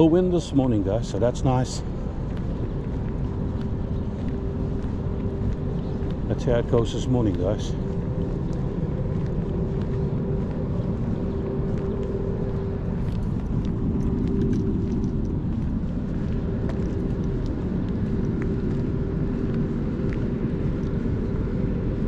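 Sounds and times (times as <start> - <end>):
machinery droning: 0.0 - 22.0.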